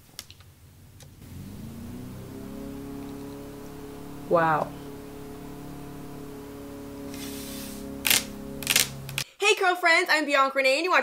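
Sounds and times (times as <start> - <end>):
lawnmower engine starting: 1.2 - 9.2
sharp clicks: 8.0 - 9.2.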